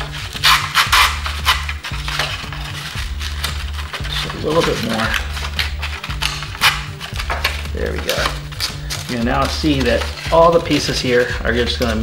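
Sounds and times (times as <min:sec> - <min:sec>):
background music with bass line: 0:00.0 - 0:12.0
foam board clicking and creaking: 0:00.0 - 0:12.0.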